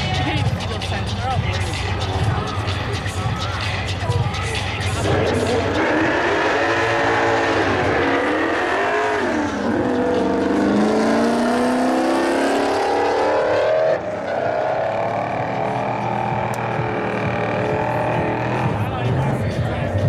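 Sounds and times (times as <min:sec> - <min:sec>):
race car engine at full throttle: 0:00.0 - 0:20.0.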